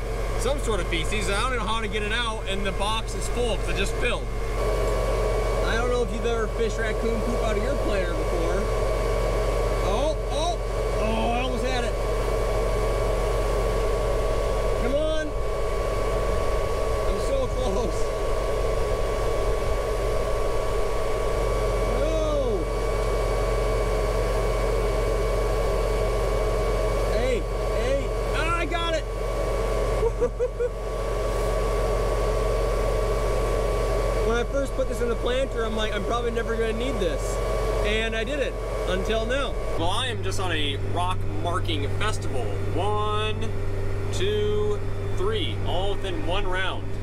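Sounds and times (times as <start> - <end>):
high machinery whine: 0.0 - 47.0
tractor idling drone: 0.0 - 47.0.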